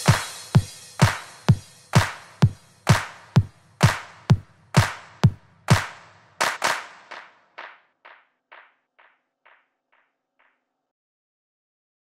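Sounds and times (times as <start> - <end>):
kick drum: 0.0 - 8.7
echoing percussion hits: 0.0 - 9.6.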